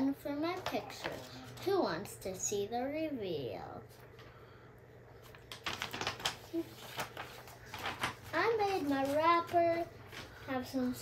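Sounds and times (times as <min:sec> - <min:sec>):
paper crackling and rustling: 0:05.2 - 0:11.0.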